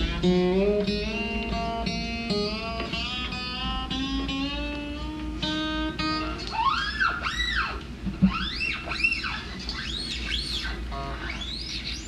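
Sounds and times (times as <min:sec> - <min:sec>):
acoustic guitar sliding notes: 0:00.0 - 0:11.6
low steady hum: 0:00.0 - 0:12.0.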